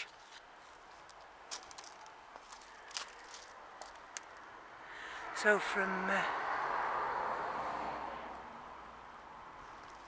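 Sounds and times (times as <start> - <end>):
footsteps on gravel: 0.0 - 4.4.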